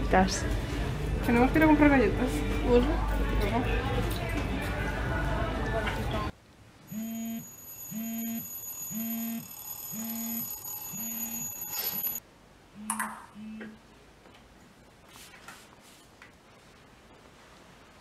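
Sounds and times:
mobile phone beeping: 6.9s - 12.2s.

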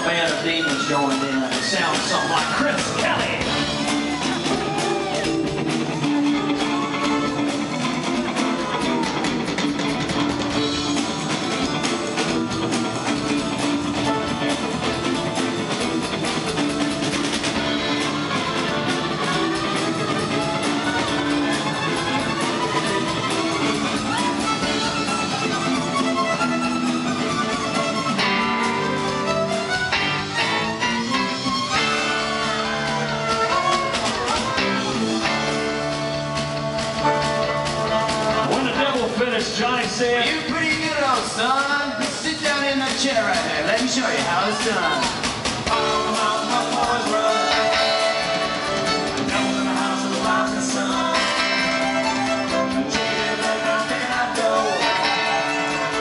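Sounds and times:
fiddle bowing: 0.0s - 39.1s, 47.2s - 49.8s, 51.1s - 56.0s
live rock band playing: 0.0s - 56.0s.

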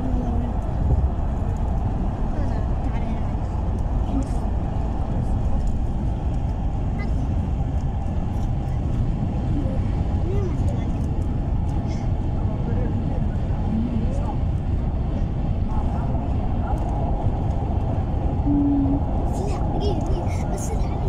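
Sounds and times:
road and engine rumble: 0.0s - 21.0s.

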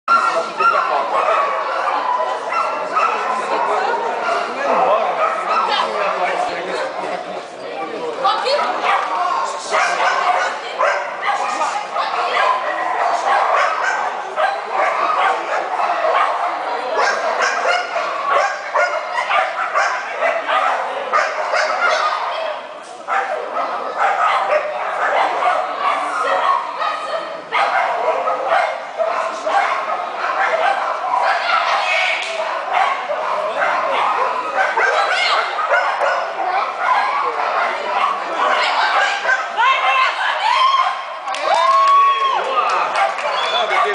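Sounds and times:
dogs barking: 0.1s - 6.4s, 8.5s - 41.1s, 42.6s - 43.9s
people talking: 0.1s - 43.9s
people's voices: 0.1s - 43.9s.

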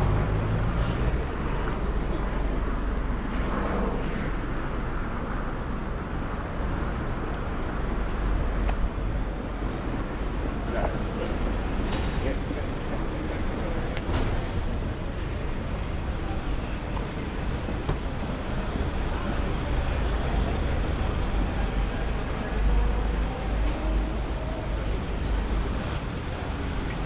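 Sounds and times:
road traffic: 0.0s - 27.0s
passers-by talking: 9.1s - 27.0s.

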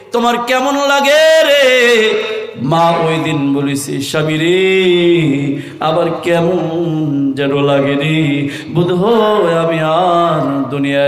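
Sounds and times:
man chanting a sermon: 0.0s - 11.0s.

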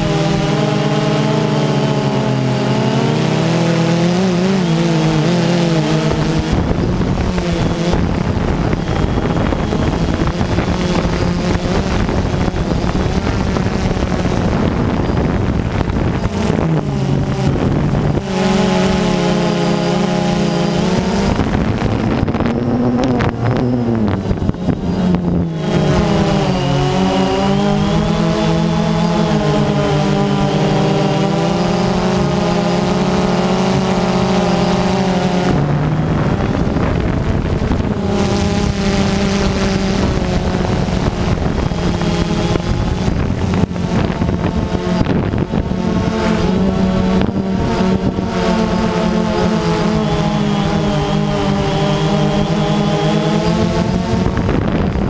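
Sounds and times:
drone propellers buzzing: 0.0s - 55.0s
wind on microphone: 0.0s - 55.0s.

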